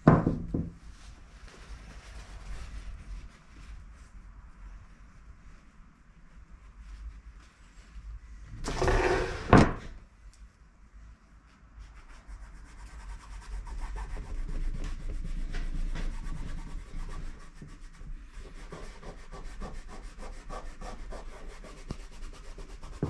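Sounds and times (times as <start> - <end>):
fabric rustling under hands: 0.8 - 8.4.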